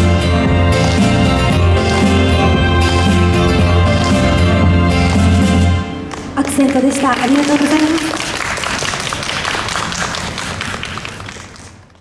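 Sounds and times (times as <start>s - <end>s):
audience applause: 6.1s - 12.0s.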